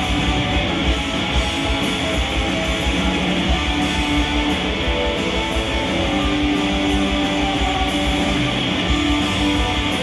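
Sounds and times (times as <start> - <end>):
distorted electric guitars: 0.0 - 10.0
steady low drum beat: 0.0 - 10.0.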